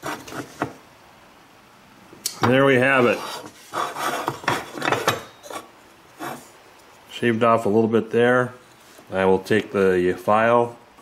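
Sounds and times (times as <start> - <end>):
hand file scraping metal: 2.9 - 6.5.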